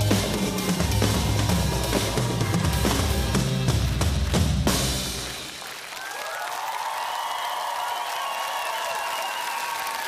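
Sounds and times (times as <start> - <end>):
drum ensemble playing: 0.0 - 5.8
audience applause and cheering: 0.0 - 10.0.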